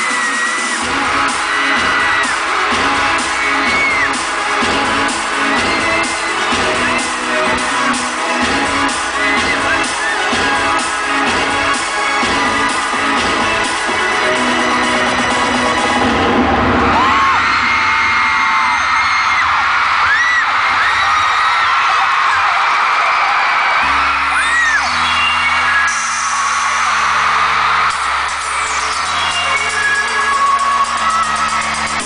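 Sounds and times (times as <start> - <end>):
crowd screaming: 0.0 - 32.0
loud concert music: 0.0 - 32.0.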